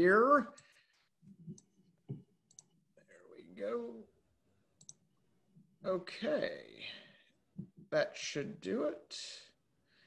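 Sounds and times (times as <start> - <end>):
computer mouse clicks: 2.4 - 2.8, 4.8 - 5.0.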